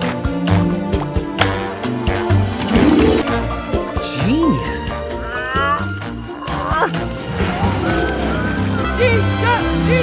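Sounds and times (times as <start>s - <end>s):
upbeat film score: 0.0s - 10.0s
animal-like cries: 4.9s - 7.0s.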